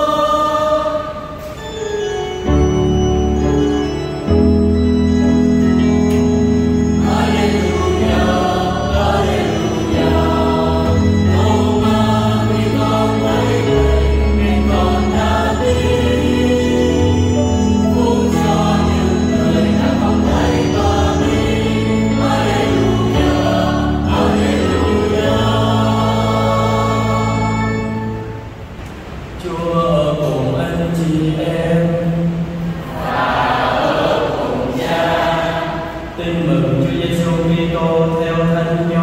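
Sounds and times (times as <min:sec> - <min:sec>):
choir singing a hymn: 0:00.0 - 0:39.0
electronic keyboard organ chords: 0:01.4 - 0:28.8.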